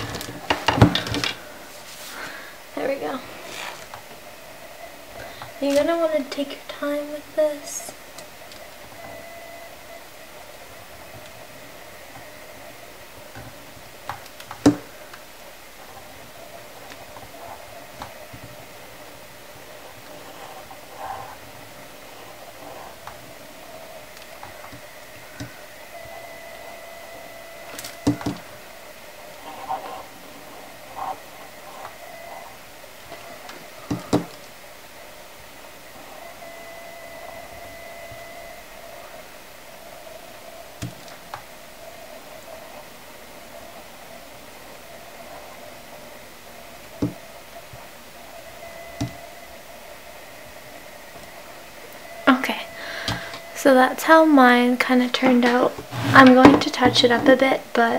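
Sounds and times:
faint steady hum: 0.0s - 57.9s.

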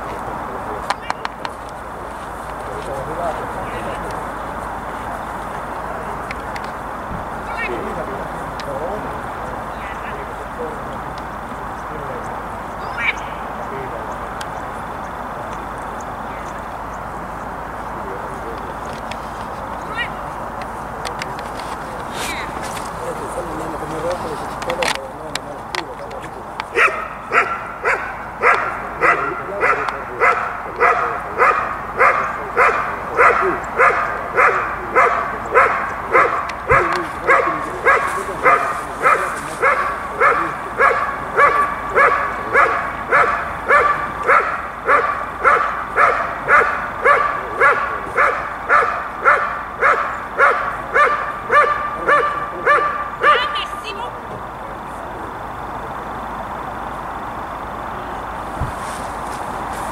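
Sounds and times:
dog barking: 26.7s - 53.6s.

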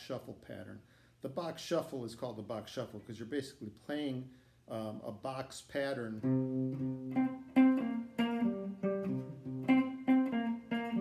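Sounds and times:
clean electric guitar shuffle: 6.0s - 11.0s.

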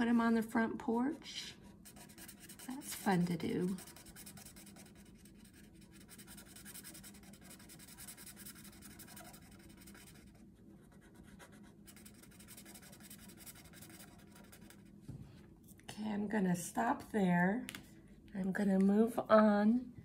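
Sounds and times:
marker scribbling on paper: 1.8s - 14.9s.

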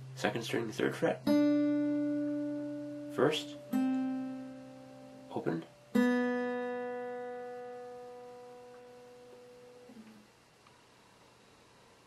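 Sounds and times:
plucked guitar note ringing: 1.1s - 10.2s.

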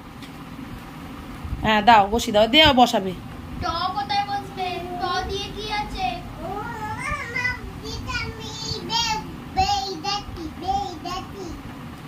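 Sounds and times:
child's sing-song calls: 3.6s - 11.6s.

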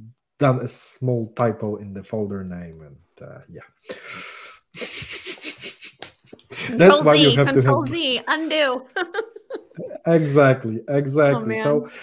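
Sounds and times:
person laughing breathily: 4.0s - 6.9s.

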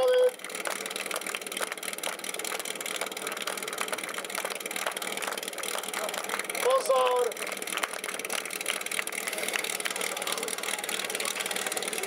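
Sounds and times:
small engine idling: 0.0s - 12.0s.

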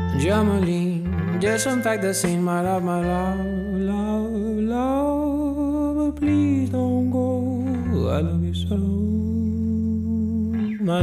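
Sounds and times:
steady bass line: 0.0s - 11.0s
long held melodic note: 1.1s - 5.4s.

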